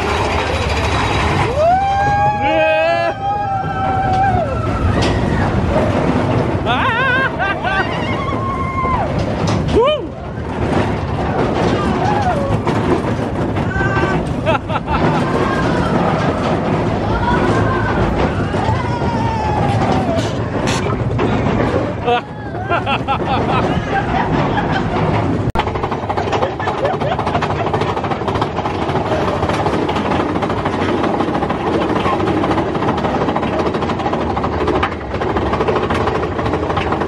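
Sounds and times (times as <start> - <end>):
roller coaster rumbling on rails: 0.0 - 37.0.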